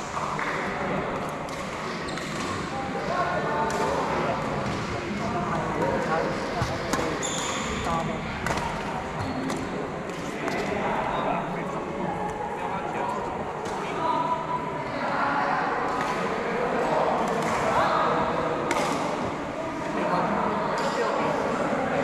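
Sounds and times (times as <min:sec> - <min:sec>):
chatter of many voices: 0:00.0 - 0:22.0
rackets hitting shuttlecock: 0:03.6 - 0:06.0, 0:06.6 - 0:10.8, 0:18.6 - 0:19.3.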